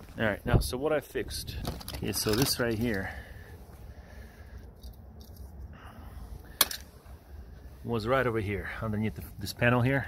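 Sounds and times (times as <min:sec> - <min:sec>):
small metal parts handled: 0:01.6 - 0:03.1, 0:04.6 - 0:05.7.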